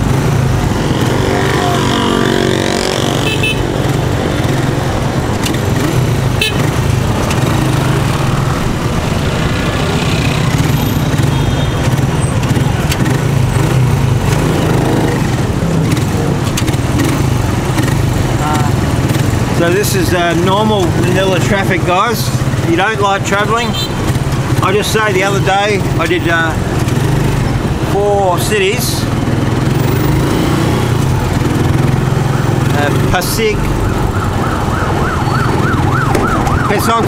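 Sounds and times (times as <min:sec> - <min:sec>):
motorcycle engine running: 0:00.0 - 0:36.8
street noise: 0:00.0 - 0:37.0.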